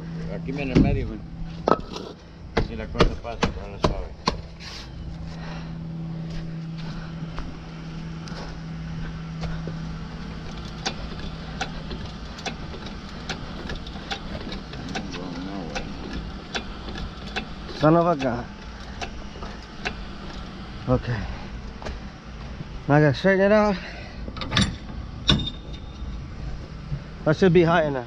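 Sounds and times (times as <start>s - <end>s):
vehicle engine running: 0.0s - 28.0s.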